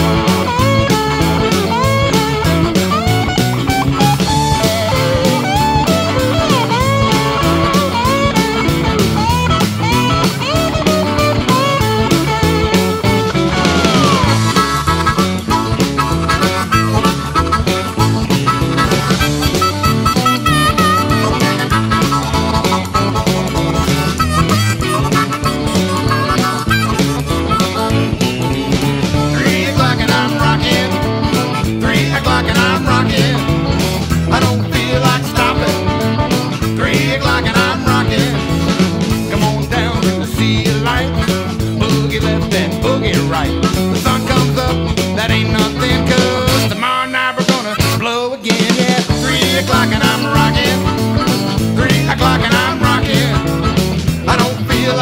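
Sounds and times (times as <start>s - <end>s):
rock and roll band playing: 0.0s - 55.0s
sliding bending lead guitar: 0.0s - 55.0s.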